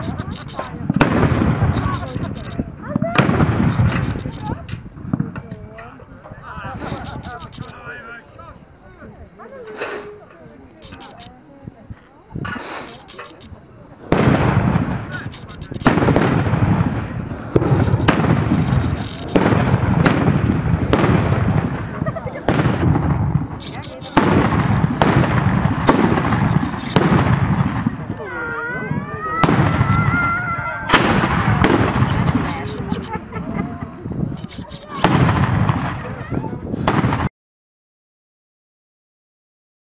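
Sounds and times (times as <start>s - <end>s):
loud carbide bangs: 0.9s - 2.3s, 3.1s - 4.3s, 14.1s - 28.2s, 29.4s - 30.2s, 30.9s - 33.0s, 34.8s - 36.0s, 36.9s - 37.3s.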